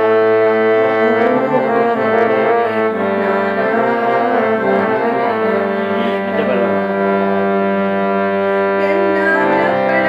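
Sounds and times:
harmonium holding a reedy chord: 0.0s - 10.0s
person singing devotional song: 0.5s - 10.0s.

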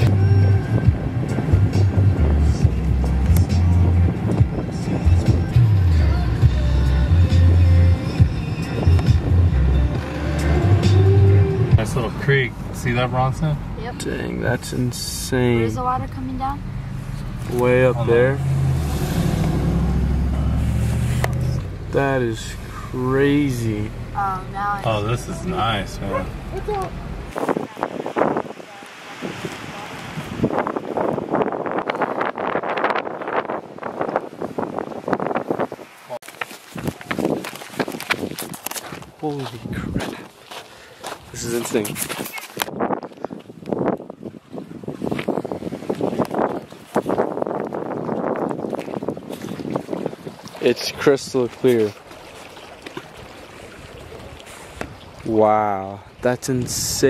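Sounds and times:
wind gusting over microphone: 0.0s - 10.0s, 10.6s - 40.3s, 41.2s - 52.1s
car engine and road noise: 0.0s - 52.3s.

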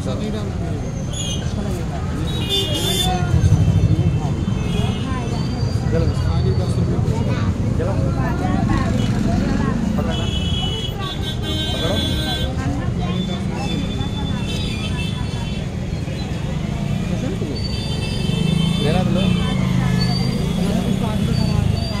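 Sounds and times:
people chattering: 0.0s - 22.0s
street traffic: 0.0s - 22.0s
vehicle horns tooting: 2.2s - 6.3s, 10.0s - 15.8s, 17.6s - 22.0s.

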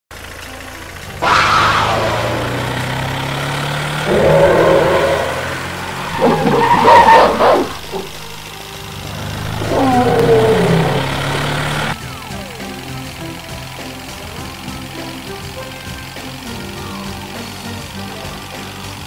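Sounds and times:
vehicle engine running: 0.1s - 19.0s
monster roars: 1.2s - 8.4s, 9.2s - 12.0s.

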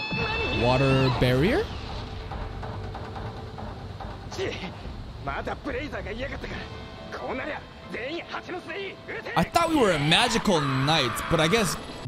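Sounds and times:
steady low rumble: 1.7s - 7.8s.

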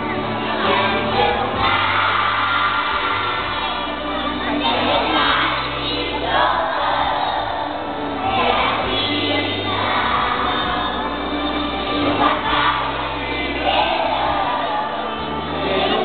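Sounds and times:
children singing together: 0.0s - 16.0s.

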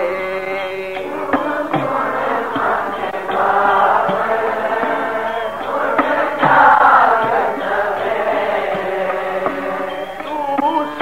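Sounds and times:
congregation singing in chorus: 0.0s - 11.0s.

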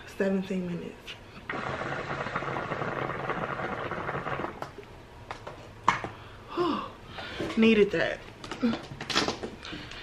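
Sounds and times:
hookah water bubbling: 1.5s - 4.8s.

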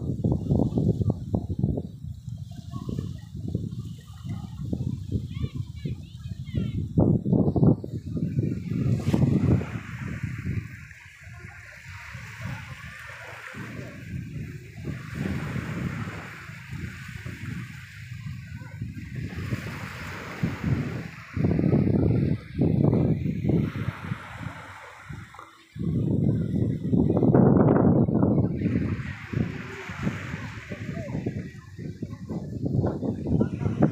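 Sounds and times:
people's voices: 0.0s - 33.9s
small waves washing onto shore: 0.0s - 33.9s.

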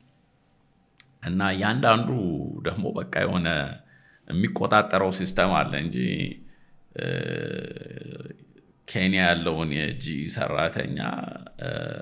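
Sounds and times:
man speaking: 1.0s - 12.0s.

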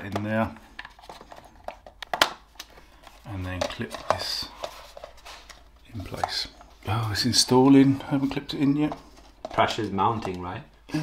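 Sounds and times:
plastic clicks and knocks: 0.0s - 4.3s.

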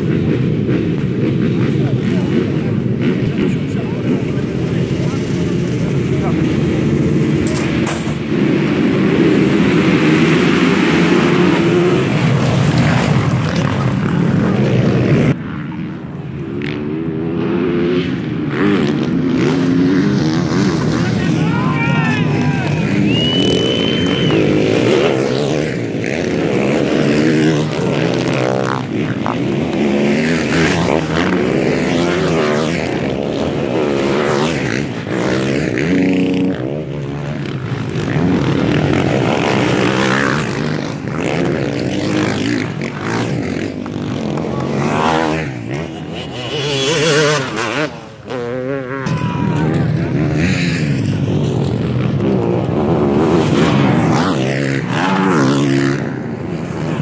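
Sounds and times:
motocross bikes at full throttle: 0.0s - 57.0s
single motocross bike passing: 0.0s - 57.0s.

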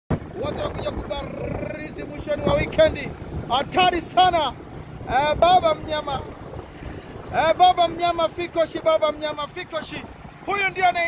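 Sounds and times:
vehicle road rumble: 0.1s - 11.0s
wind noise: 0.1s - 11.0s
person talking: 0.3s - 6.3s.

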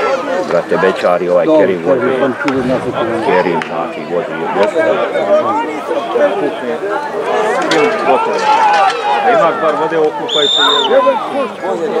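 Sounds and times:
crowd talking and calling: 0.0s - 12.0s.

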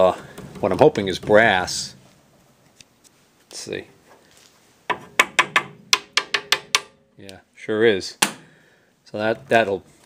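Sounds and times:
tapping on metal coil: 4.9s - 7.0s.

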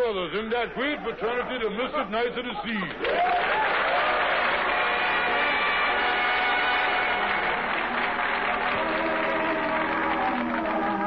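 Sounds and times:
audience applause: 3.0s - 11.0s.

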